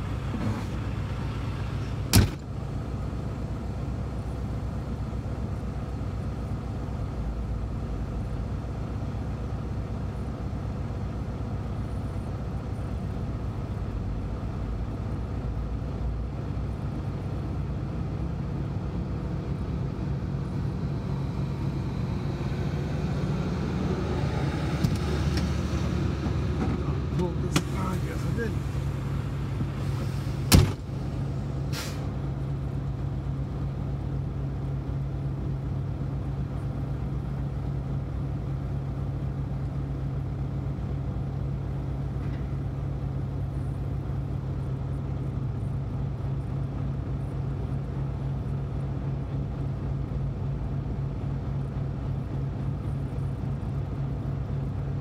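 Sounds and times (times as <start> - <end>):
diesel engine humming: 0.0 - 55.0.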